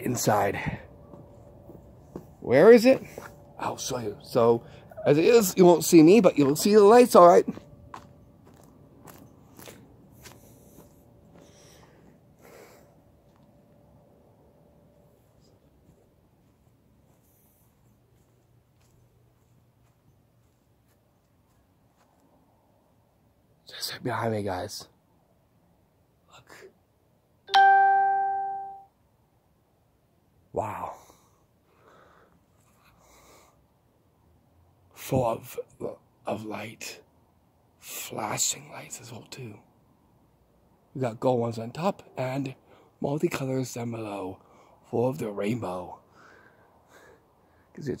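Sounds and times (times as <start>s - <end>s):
faint steady hum: 0.0s - 48.0s
footsteps crunching: 1.0s - 3.7s, 5.4s - 12.1s, 15.1s - 22.4s
chime ringing: 27.5s - 28.9s.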